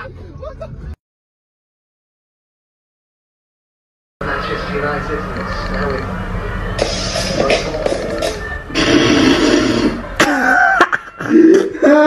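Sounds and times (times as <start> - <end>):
person laughing: 10.2 - 12.0.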